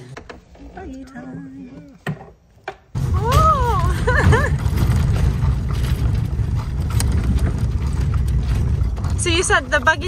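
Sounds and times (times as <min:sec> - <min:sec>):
buggy wheels rumbling on pavement: 0:03.0 - 0:10.0
buggy body rattling and clicking: 0:03.1 - 0:10.0.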